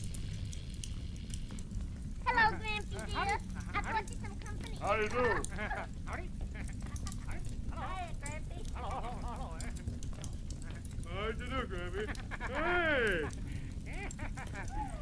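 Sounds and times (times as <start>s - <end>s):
film soundtrack hum and crackle: 0.0s - 15.0s.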